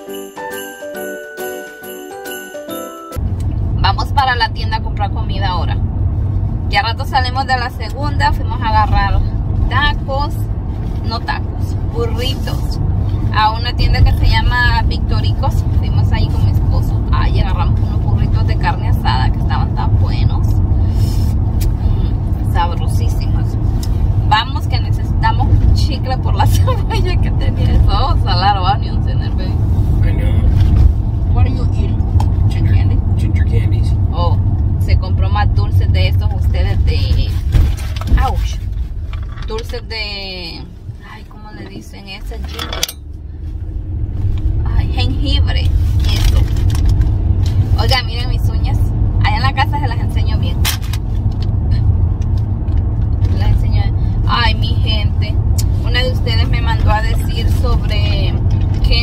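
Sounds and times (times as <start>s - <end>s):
car cabin road rumble: 3.2s - 59.0s
woman talking: 3.7s - 5.8s, 6.6s - 29.6s, 31.3s - 38.7s, 39.4s - 42.9s, 44.6s - 46.7s, 47.5s - 50.7s, 53.2s - 59.0s.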